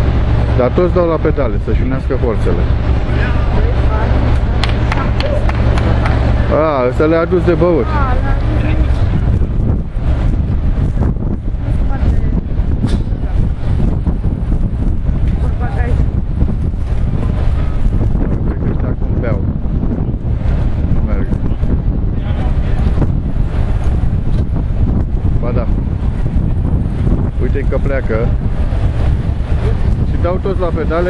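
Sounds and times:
wind blowing on microphone: 0.0 - 31.0.

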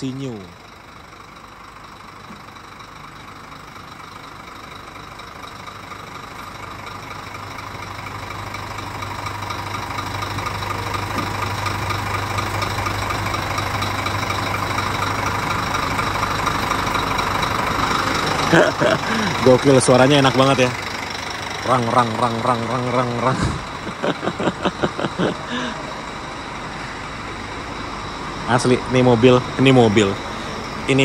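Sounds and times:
diesel bus engine idling: 0.0 - 31.0.

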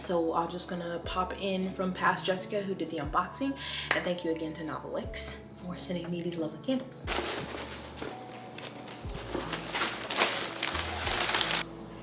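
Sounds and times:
packing paper crinkling: 7.1 - 11.7.

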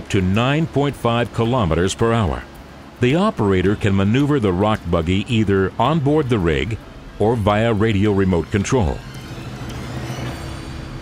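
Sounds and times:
drilling rig engine running: 0.0 - 11.0
background music: 3.0 - 11.0.

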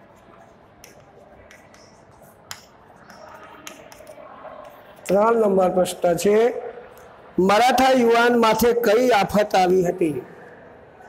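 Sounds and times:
chalk scratching on blackboard: 0.0 - 5.1.

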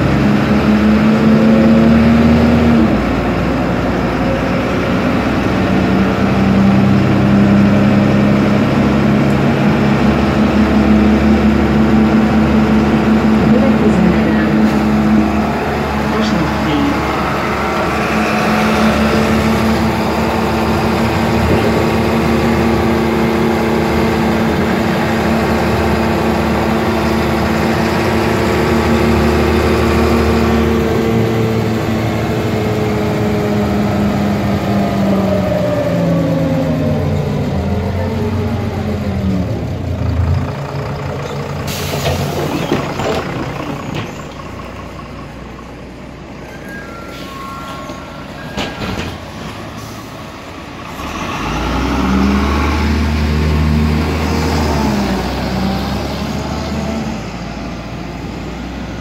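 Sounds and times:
bus engine whining: 0.0 - 59.0
air brake hiss: 49.7 - 50.3.

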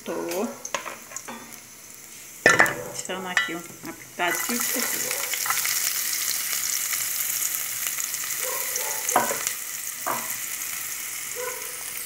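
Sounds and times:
garlic sizzling in oil: 0.0 - 12.0.

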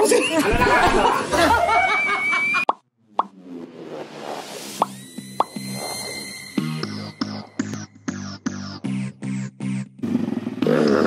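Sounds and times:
electronic intro music: 3.1 - 9.9
whoosh: 3.2 - 7.9
high electronic tone: 3.2 - 8.9.

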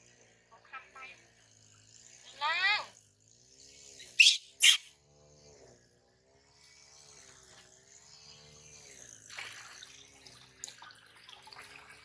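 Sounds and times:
baby monkey shrieking: 4.1 - 4.9
water splashing into steel basin: 9.3 - 12.0.

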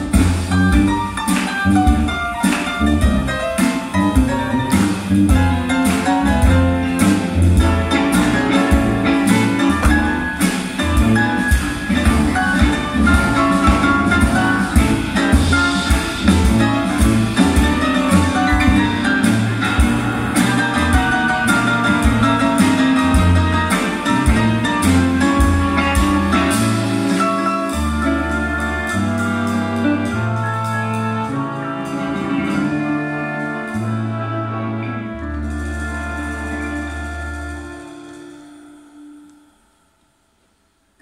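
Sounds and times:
bass line: 0.0 - 38.2
guitar: 0.0 - 38.3
live band playing: 0.0 - 39.6
drums: 0.0 - 39.7.

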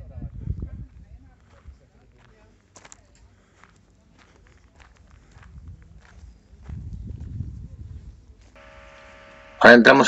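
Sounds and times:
footsteps walking: 1.4 - 9.4.

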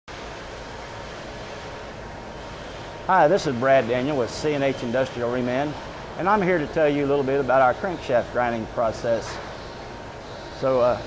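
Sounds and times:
machine shop hum and hiss: 0.1 - 11.0.

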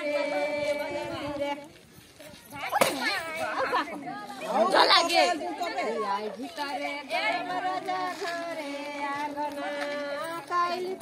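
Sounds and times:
people talking at once: 2.2 - 7.7.

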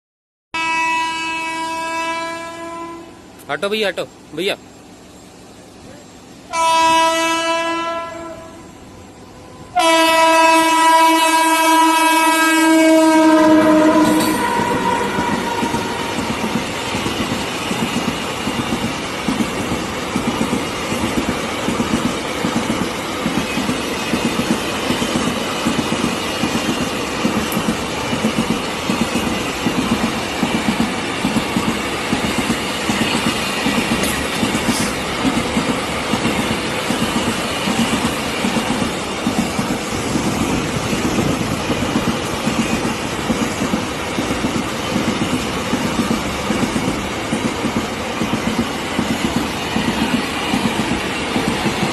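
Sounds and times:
locomotive horn: 0.6 - 3.3, 6.5 - 8.8, 9.4 - 16.2
freight train rumbling past: 0.6 - 51.9
wheels clattering on rails: 14.0 - 51.9.

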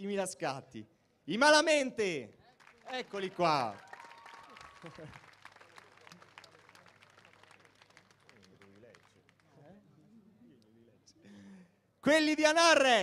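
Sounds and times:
audience applause: 2.6 - 9.6.

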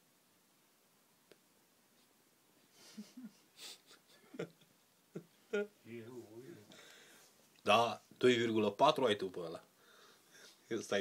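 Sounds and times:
person breathing: 6.5 - 7.4, 9.8 - 10.7.

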